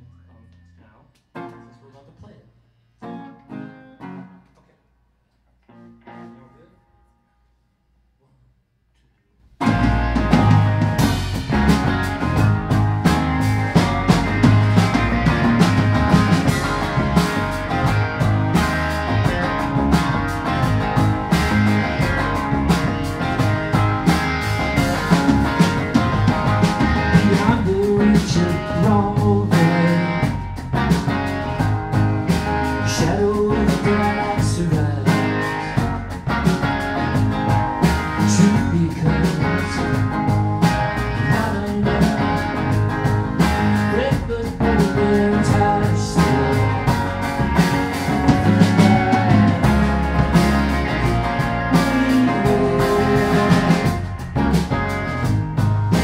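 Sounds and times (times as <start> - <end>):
rock band playing: 3.0 - 4.4, 9.6 - 56.0
man singing: 27.1 - 30.4, 32.8 - 35.8, 38.2 - 40.0, 41.2 - 42.7, 43.8 - 47.0, 51.7 - 54.0.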